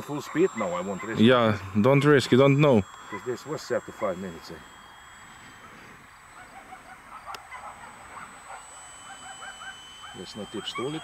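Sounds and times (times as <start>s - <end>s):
thin high-pitched whine: 0.0s - 11.0s
bird calls: 5.4s - 11.0s.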